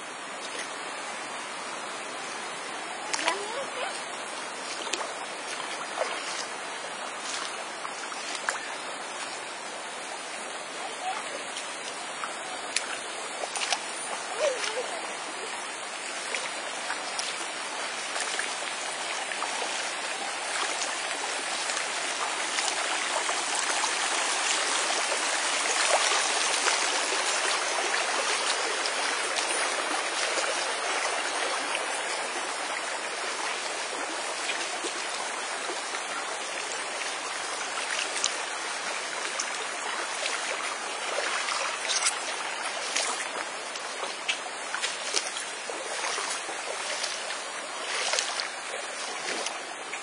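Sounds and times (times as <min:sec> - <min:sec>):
creek flowing over stones: 0:00.0 - 0:50.0.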